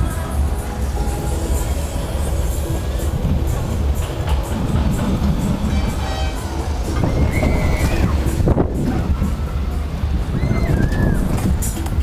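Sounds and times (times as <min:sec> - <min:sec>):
fairground music: 0:00.0 - 0:12.0
ride wind and machinery rumble: 0:00.0 - 0:12.0
high squeal: 0:05.6 - 0:08.5, 0:10.3 - 0:11.8.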